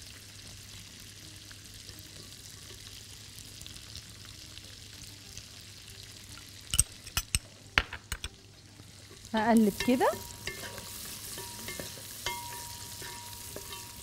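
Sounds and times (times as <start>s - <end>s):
food sizzling in a pot: 0.0s - 14.0s
spoon clinking against glass bowls: 6.7s - 7.4s, 9.8s - 14.0s.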